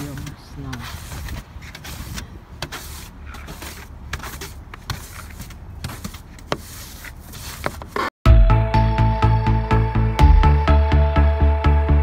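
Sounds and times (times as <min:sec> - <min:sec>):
brush sweeping snow off glass: 0:00.0 - 0:08.0.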